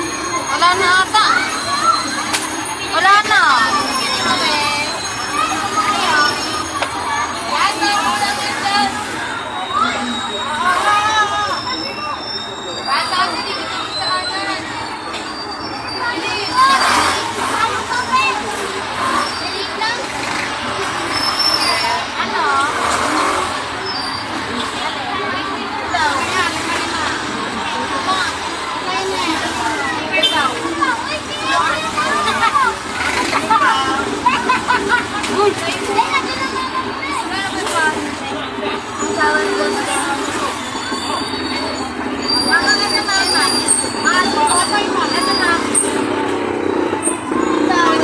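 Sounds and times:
children chattering and calling: 0:00.0 - 0:48.0
street traffic noise: 0:00.0 - 0:48.0.

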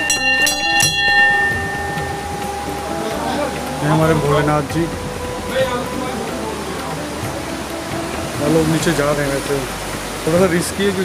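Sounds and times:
small metal bell ringing: 0:00.0 - 0:02.8.

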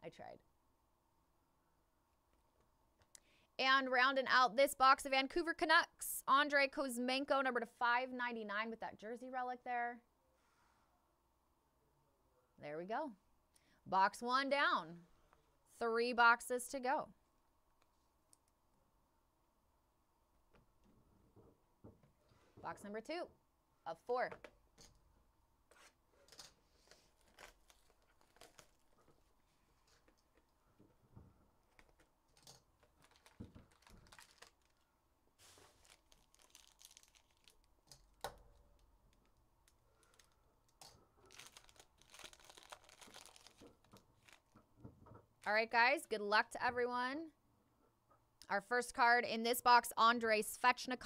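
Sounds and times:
foil wrapper crinkling and tearing: 0:26.3 - 0:30.4, 0:31.6 - 0:44.6.

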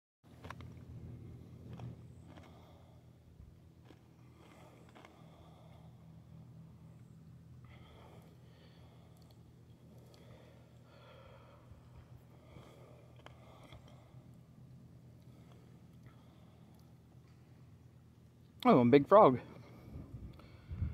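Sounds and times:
faint low hum: 0:00.3 - 0:20.9.

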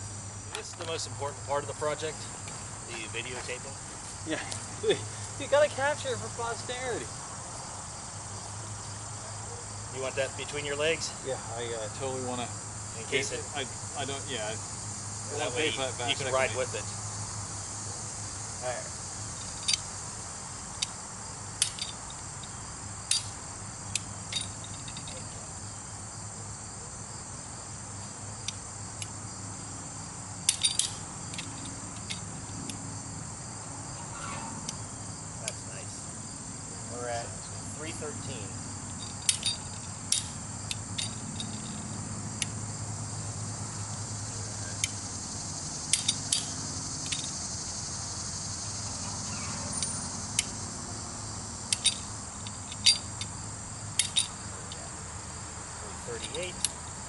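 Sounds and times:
insects chirring: 0:00.0 - 0:57.0.

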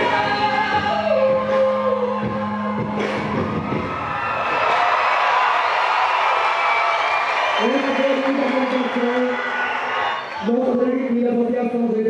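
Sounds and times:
music over sound system: 0:00.0 - 0:04.8
large crowd cheering: 0:02.2 - 0:11.5.

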